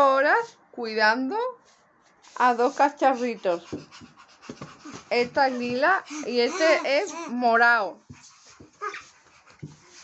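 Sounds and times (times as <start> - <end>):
child whimpering like a puppy: 5.6 - 7.5, 8.8 - 9.1.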